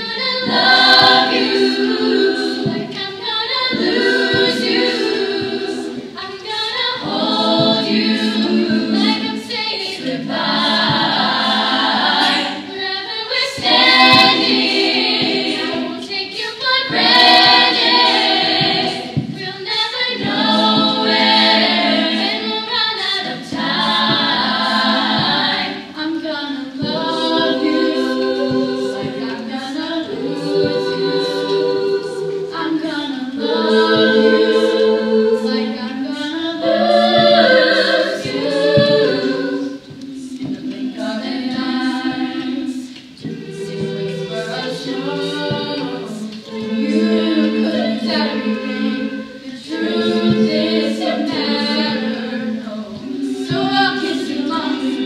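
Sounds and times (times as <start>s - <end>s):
girls singing a cappella harmony: 0.0s - 55.0s.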